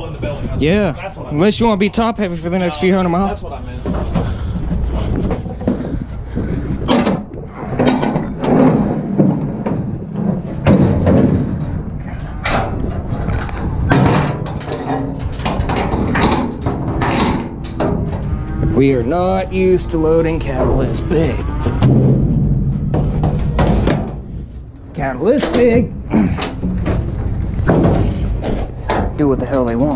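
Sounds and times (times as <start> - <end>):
low rumble: 3.4 - 29.8
metal bangs against trailer: 6.8 - 18.3, 21.7 - 24.5, 25.2 - 29.8.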